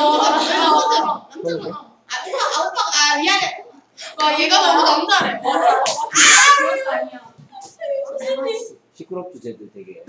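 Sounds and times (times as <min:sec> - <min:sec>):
child talking: 0:00.0 - 0:08.8.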